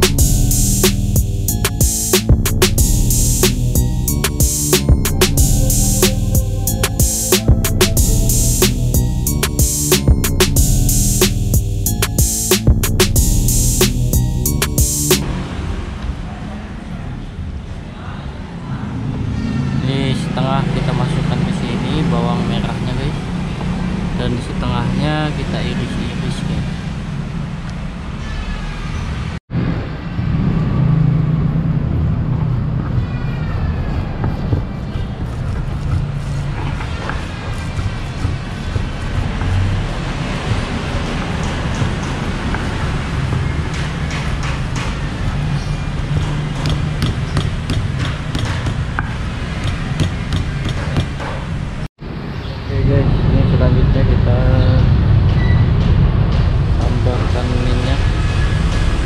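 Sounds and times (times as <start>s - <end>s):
stone pestle knocking in mortar: 46.2s - 51.2s.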